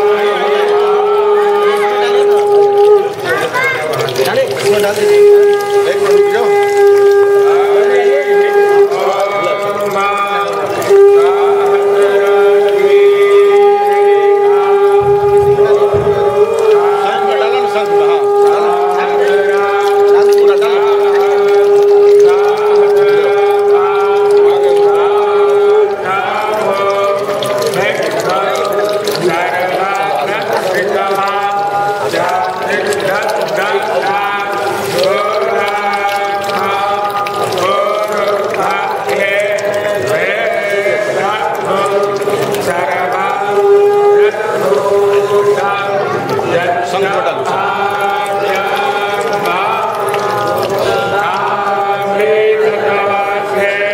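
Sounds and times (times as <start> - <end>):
conch shell blown: 0.0 - 3.2, 4.9 - 29.2
voices chanting: 0.0 - 53.9.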